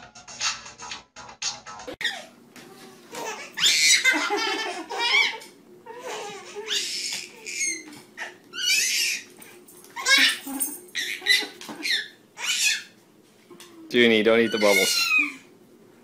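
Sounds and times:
music: 0.0 - 2.0
baby laughing: 2.0 - 2.4, 3.1 - 9.3, 10.0 - 13.0, 14.5 - 15.5.

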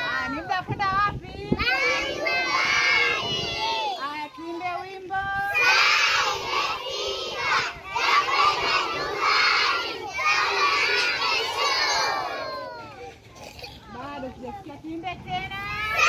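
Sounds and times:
children shouting together: 1.6 - 4.1, 5.5 - 13.3, 15.7 - 16.0.

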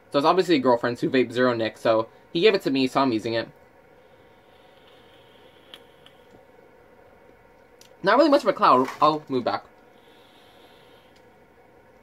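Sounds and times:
hiss of air through vape: 4.0 - 6.4, 10.0 - 11.3.

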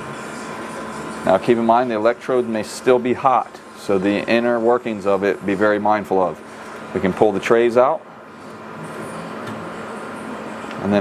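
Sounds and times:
mechanical hum and hiss: 0.0 - 11.0.

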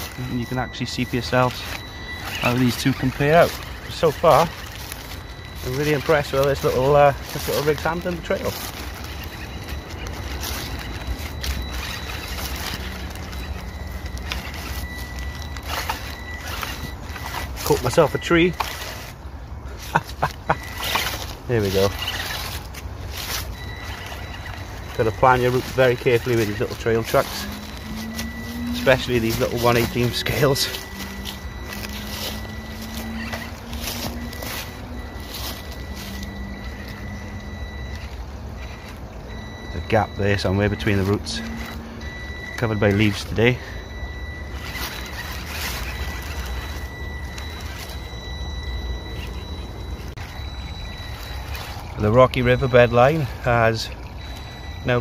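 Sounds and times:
high motor whine: 0.0 - 55.0
leaves crackling under tyres: 0.0 - 55.0.

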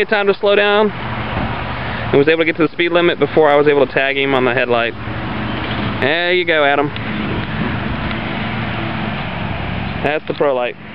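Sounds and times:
low engine hum: 0.0 - 10.9
vehicle rushing noise: 0.9 - 10.9.

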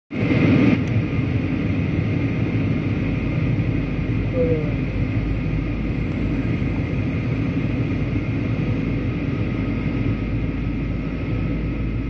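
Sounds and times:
airflow in aircraft cabin: 0.1 - 12.0
jet engines rumbling: 0.1 - 12.0.

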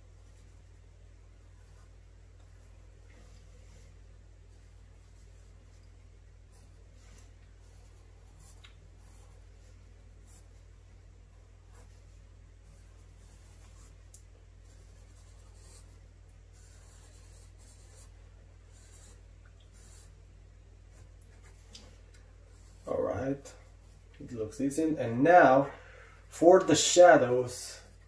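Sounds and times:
low steady hum: 0.0 - 28.0
pencil scratching on paper: 1.6 - 5.7, 6.5 - 10.6, 11.7 - 14.0, 14.6 - 20.2, 20.9 - 21.7, 22.5 - 24.0.

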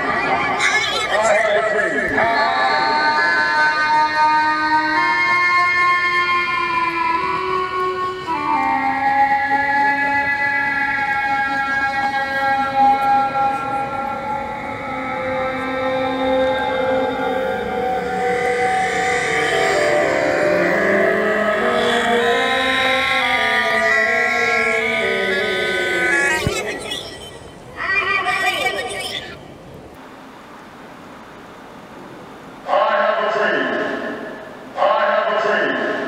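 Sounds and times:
gliding electronic tones: 23.8 - 29.5.

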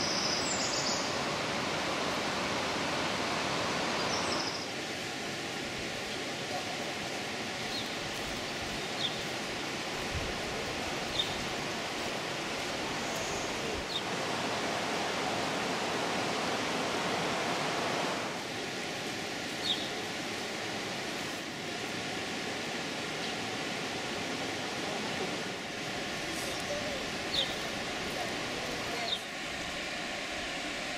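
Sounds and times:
river water rushing: 0.0 - 30.9.

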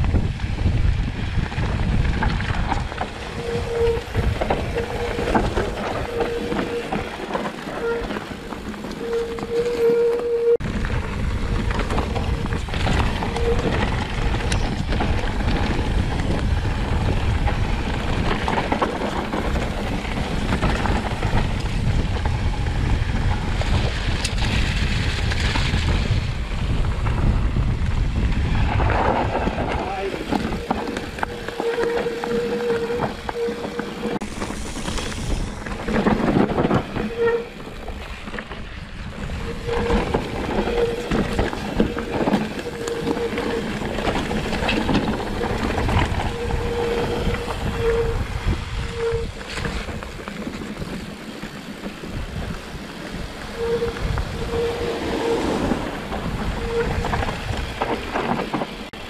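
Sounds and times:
bike knocking and rattling: 0.0 - 59.0
tyres rumbling on dirt trail: 0.0 - 59.0
wind buffeting microphone: 0.0 - 59.0.

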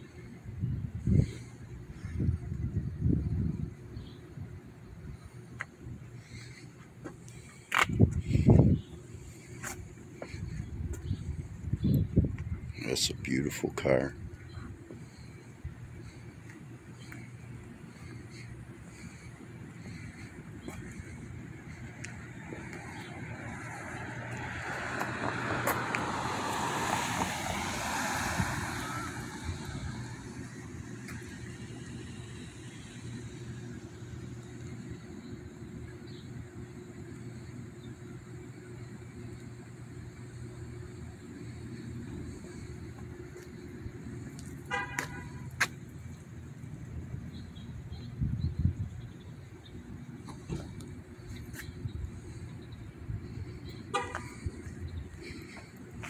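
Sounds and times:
steady low hum: 0.0 - 56.0
car passing: 12.6 - 35.2.

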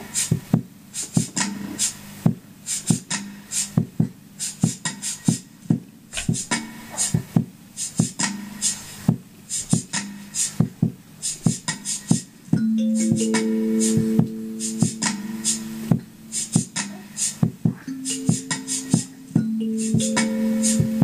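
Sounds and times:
low ringing notes: 12.6 - 16.8, 17.8 - 21.0
kalimba plucks: 12.6 - 17.1, 17.8 - 21.0.

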